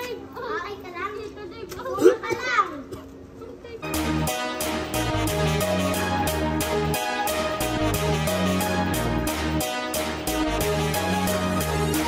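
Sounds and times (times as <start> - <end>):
young children chattering: 0.0 - 3.9.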